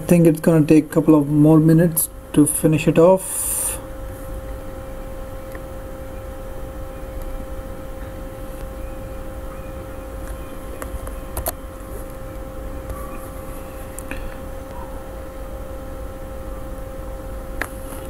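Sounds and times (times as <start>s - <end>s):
steady hum: 0.0s - 18.0s.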